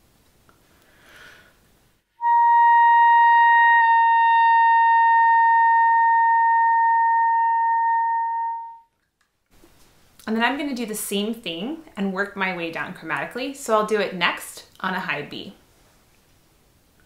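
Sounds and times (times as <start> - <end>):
breath: 0.6 - 1.7
clarinet holding high note: 2.2 - 8.9.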